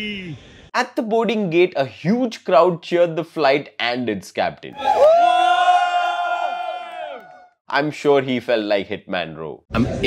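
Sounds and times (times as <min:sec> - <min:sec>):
crowd cheering: 0:04.8 - 0:07.5.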